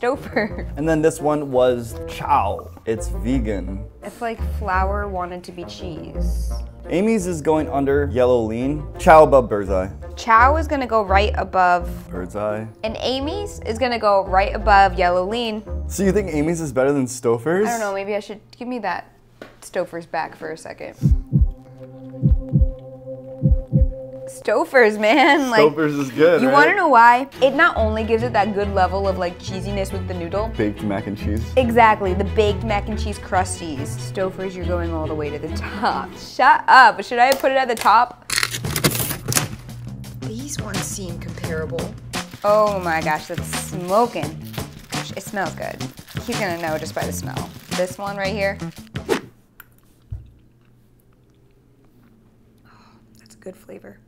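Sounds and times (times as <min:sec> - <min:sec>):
heartbeat double thumps: 0:21.0 - 0:24.1
steady low drone: 0:21.0 - 0:24.4
low thud: 0:21.1 - 0:21.6
quiet chewing: 0:49.6 - 0:53.3.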